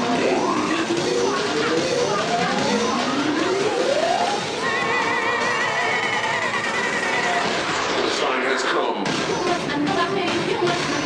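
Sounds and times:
cheer routine music: 0.0s - 8.2s, 9.0s - 11.0s.

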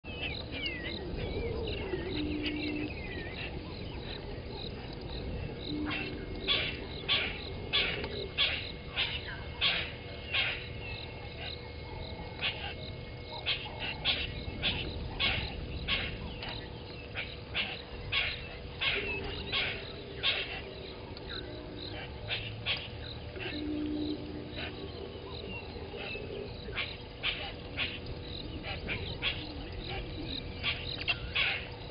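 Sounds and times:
bird twittering song: 0.1s - 31.9s.

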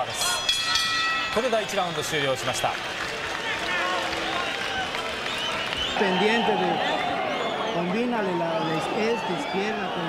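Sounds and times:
arena crowd noise: 0.0s - 10.0s
boxing ring bell: 0.1s - 2.0s
voices calling out: 3.3s - 10.0s.

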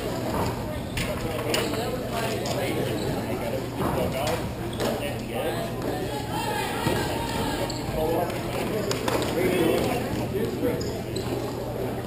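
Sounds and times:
hockey sticks and puck clacking: 0.2s - 3.1s, 6.8s - 10.9s.

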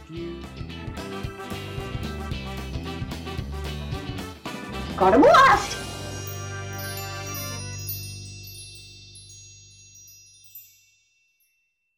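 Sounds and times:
magical chime sting: 5.2s - 10.8s.

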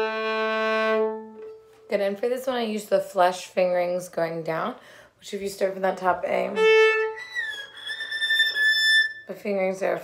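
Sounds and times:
violin bowing high note: 0.0s - 1.8s, 6.5s - 9.3s.

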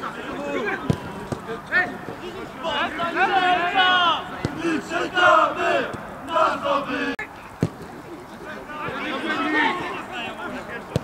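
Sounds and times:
men shouting: 2.6s - 7.2s.

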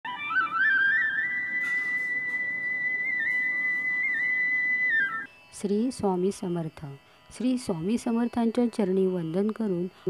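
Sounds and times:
high pure note held: 0.1s - 5.8s.

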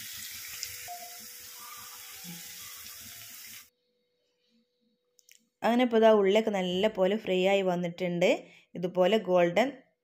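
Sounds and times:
onions sizzling in oil: 0.0s - 3.7s.

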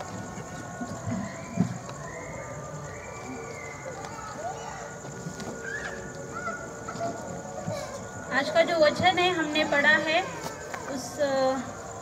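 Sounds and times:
faint indistinct voices: 0.0s - 12.0s
steady room hum: 0.0s - 12.0s.

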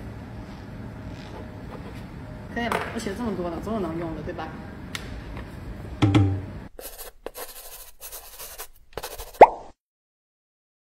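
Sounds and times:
scratchy pen-stroke swishes: 6.8s - 9.7s.

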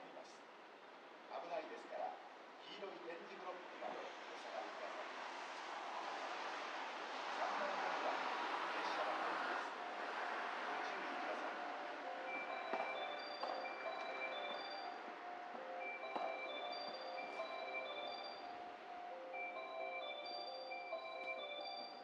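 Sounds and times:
bell-like mallet chime melody: 12.0s - 22.0s.

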